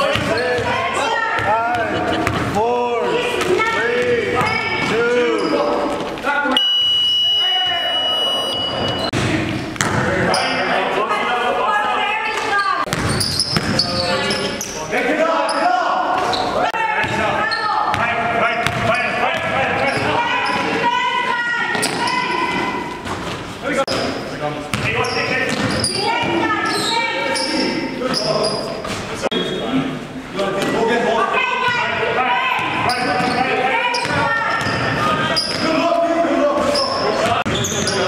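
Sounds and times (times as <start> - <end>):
ball bouncing on hardwood court: 0.0 - 2.6, 3.3 - 5.0, 8.8 - 10.1, 12.8 - 13.9, 17.9 - 20.7, 21.7 - 23.3, 24.7 - 26.5, 34.0 - 35.7
players' voices: 0.0 - 38.0.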